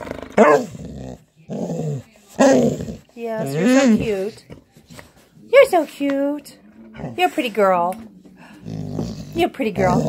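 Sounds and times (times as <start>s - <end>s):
dog growling: 0.0s - 4.3s, 8.5s - 10.0s.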